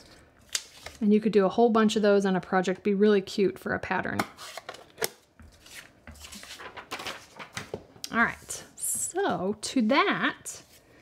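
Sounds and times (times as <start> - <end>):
paper rustling: 5.5 - 7.8.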